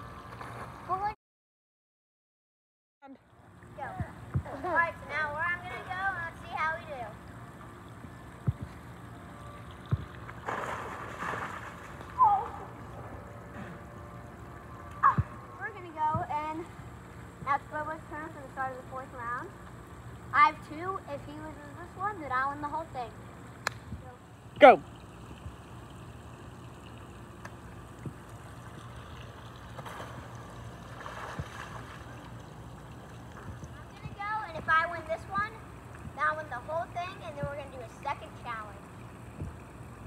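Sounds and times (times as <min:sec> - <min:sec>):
low outdoor rumble: 0:03.0 - 0:40.0.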